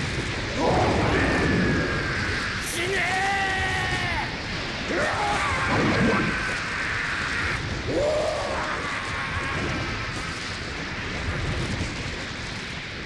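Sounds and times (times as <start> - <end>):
dense thunderous rumble: 0.0 - 13.0.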